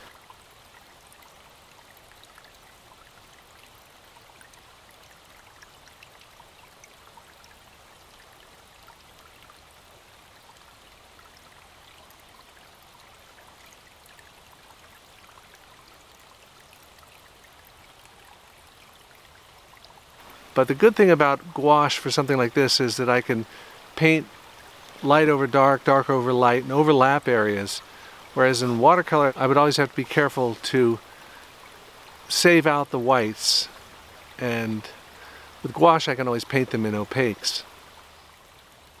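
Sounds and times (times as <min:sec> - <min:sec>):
stream rushing: 0:00.0 - 0:39.0.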